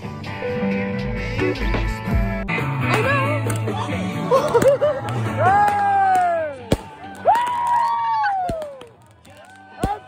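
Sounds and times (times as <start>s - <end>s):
firework crackles: 6.6s - 10.0s.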